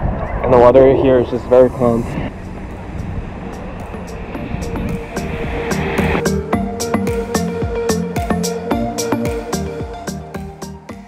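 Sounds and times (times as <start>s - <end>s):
seawater rumbling: 0.0s - 6.8s.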